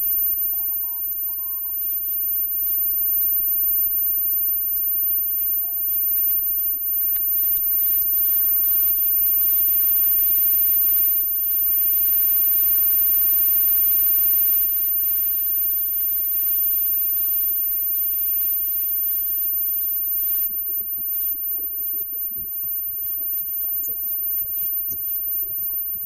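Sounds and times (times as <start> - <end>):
electrical mains hum: 0.0 - 26.0
high-pitched whine: 4.8 - 26.0.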